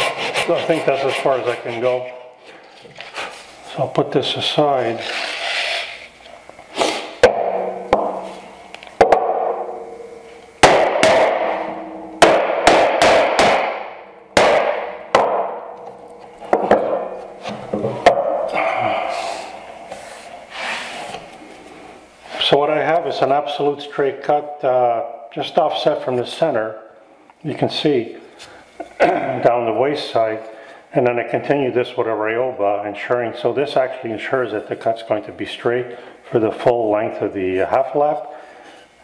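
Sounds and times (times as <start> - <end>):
iron holdfasts knocking on workbench: 7.2 - 8.3, 9.0 - 9.7, 10.6 - 15.6.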